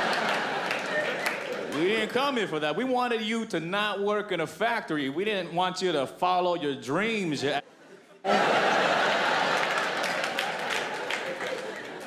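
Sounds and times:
audience laughing: 0:00.0 - 0:01.8, 0:07.7 - 0:12.0
audience applauding: 0:00.0 - 0:02.2, 0:08.3 - 0:12.0.

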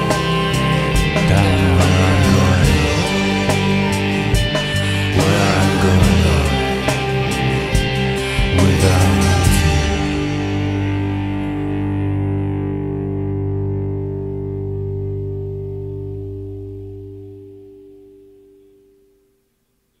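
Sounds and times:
electric guitar chord ringing: 0:00.0 - 0:19.5.

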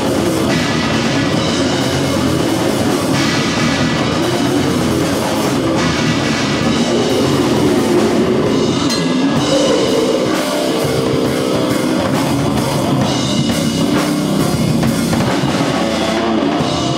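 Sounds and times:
death metal band playing live: 0:00.0 - 0:16.9.

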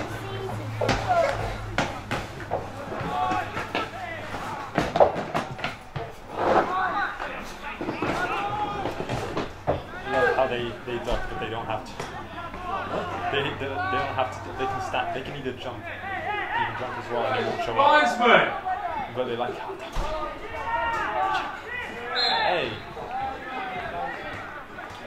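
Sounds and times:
players and spectators shouting: 0:00.0 - 0:05.0, 0:05.8 - 0:25.0.

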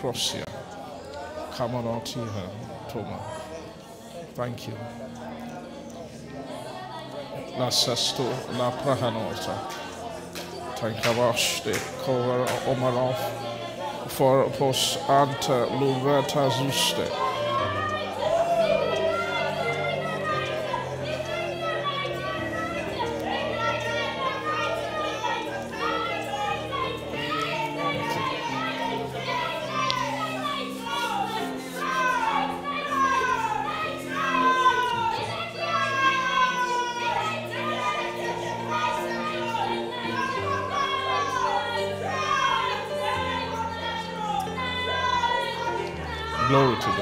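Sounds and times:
voices praying aloud: 0:00.0 - 0:47.0
keyboard sustained chords: 0:04.2 - 0:47.0.

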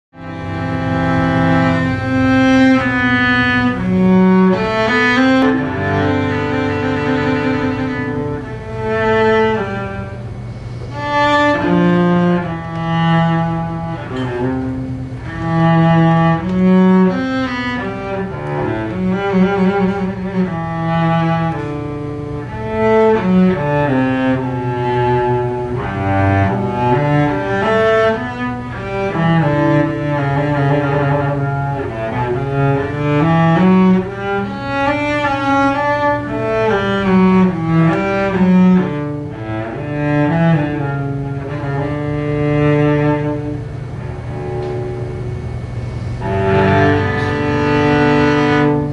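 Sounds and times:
solo cello melody: 0:00.1 - 0:48.9.

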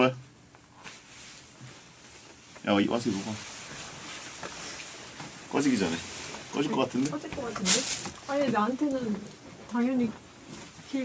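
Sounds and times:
coat fabric rustling: 0:00.8 - 0:11.0.

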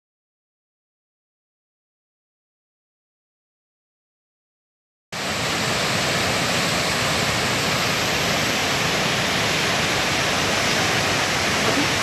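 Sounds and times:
floodwater pouring over a dam: 0:05.2 - 0:12.0.

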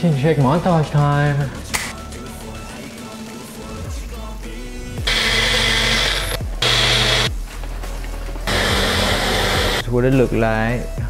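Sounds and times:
background music: 0:00.0 - 0:11.0
blender motor running: 0:05.1 - 0:07.3, 0:08.5 - 0:09.8.

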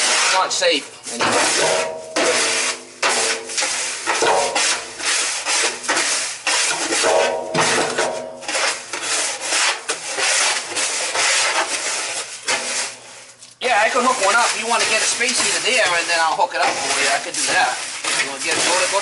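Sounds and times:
gritty granules scraping on steel: 0:00.0 - 0:19.0.

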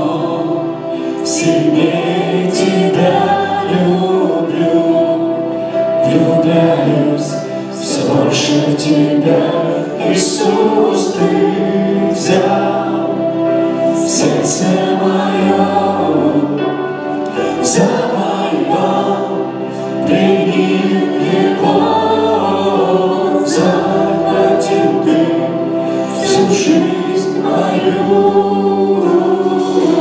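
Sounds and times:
keyboard: 0:00.0 - 0:30.0
men singing along: 0:00.0 - 0:30.0
drums: 0:23.3 - 0:30.0.

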